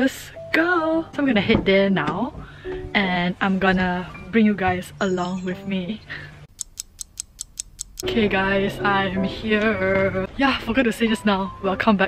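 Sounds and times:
rapid clock ticking: 0:06.5 - 0:08.1.

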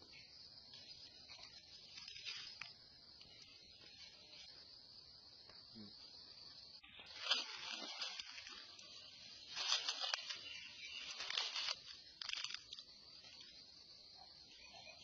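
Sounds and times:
crackling rustling noise: 0:00.7 - 0:04.6, 0:06.8 - 0:13.6.

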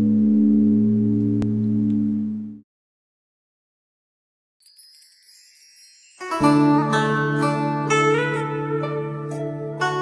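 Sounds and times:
high tinkling shimmer of intro music: 0:04.6 - 0:07.8.

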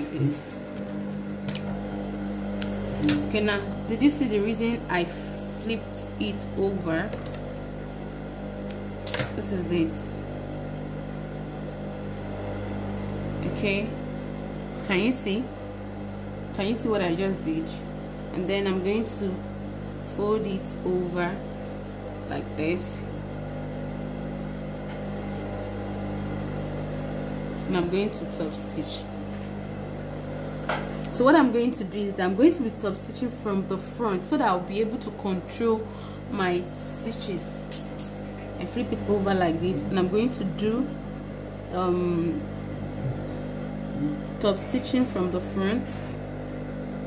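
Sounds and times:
sewing machine motor humming: 0:00.0 - 0:46.2.

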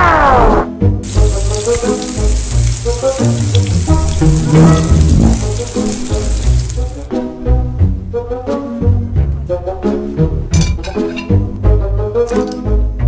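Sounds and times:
background music with bass line: 0:00.6 - 0:13.0
water running from tap: 0:01.0 - 0:07.1.

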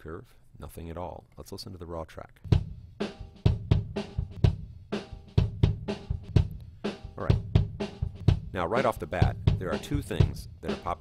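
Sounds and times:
boxy kick drum hits: 0:02.5 - 0:08.6.

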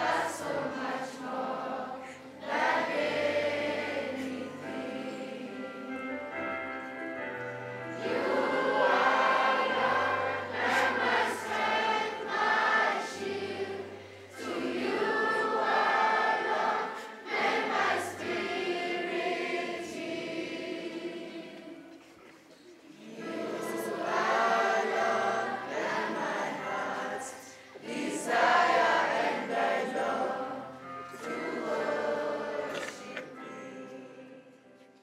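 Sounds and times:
children's choir singing a hymn: 0:00.0 - 0:35.0.

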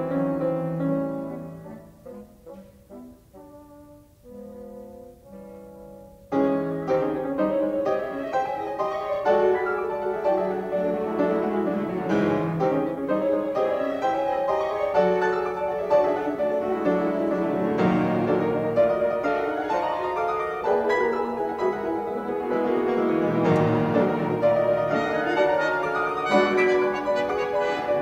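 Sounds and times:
piano with symphony orchestra: 0:00.0 - 0:28.0.

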